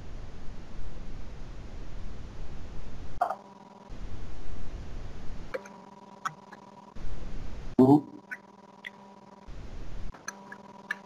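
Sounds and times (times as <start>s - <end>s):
computer mouse clicks: 5.5s - 6.7s, 10.1s - 11.0s.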